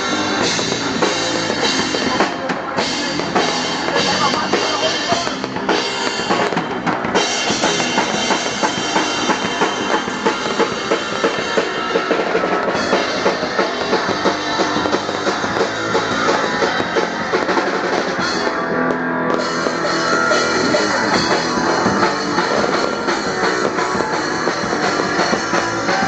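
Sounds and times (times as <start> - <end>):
drum kit beating: 0.0 - 26.0
live rock band playing: 0.0 - 26.0.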